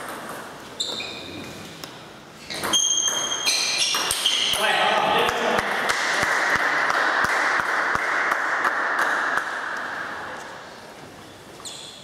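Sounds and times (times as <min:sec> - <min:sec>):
people clapping: 0:05.2 - 0:10.3.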